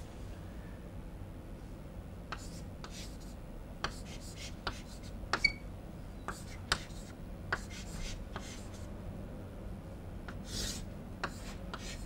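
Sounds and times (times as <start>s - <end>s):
low room hum: 0.0s - 12.0s
chalk scraping on chalkboard: 2.3s - 5.5s, 6.3s - 8.8s, 10.3s - 12.0s
chalk tapping and scratching: 2.3s - 5.6s, 6.3s - 8.9s, 10.3s - 12.0s.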